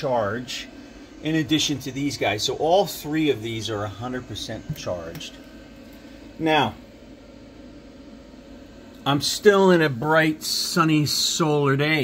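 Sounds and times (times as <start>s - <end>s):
cooling fans humming: 0.0s - 12.0s.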